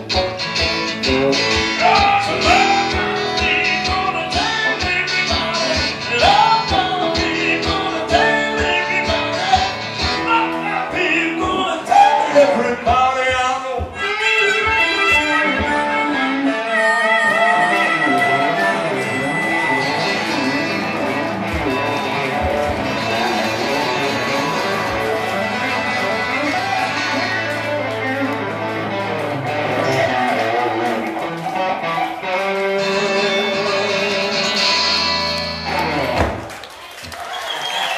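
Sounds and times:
acoustic and electric guitars playing: 0:00.0 - 0:36.8.

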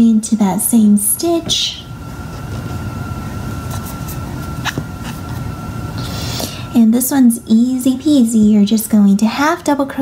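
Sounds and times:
faint steady whine: 0:00.0 - 0:10.0
low background hum: 0:00.0 - 0:10.0.

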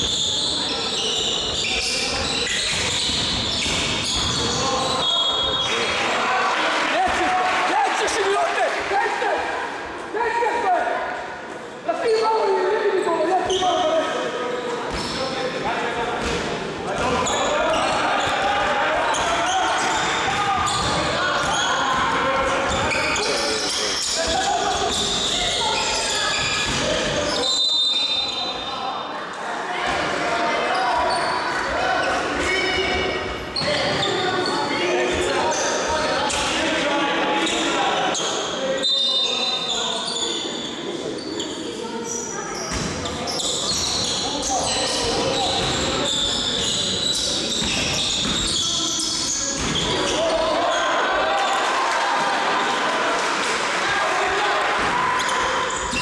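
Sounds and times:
echoing voices: 0:00.0 - 0:56.0.

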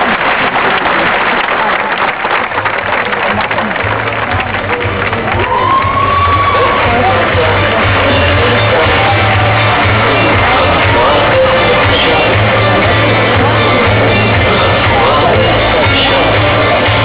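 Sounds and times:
audience applause: 0:00.0 - 0:17.0
crowd noise: 0:00.0 - 0:17.0
rock music with bass and drums: 0:04.4 - 0:17.0.

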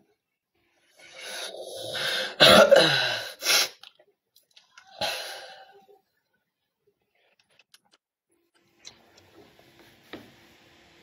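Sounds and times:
person coughing: 0:02.3 - 0:03.3.

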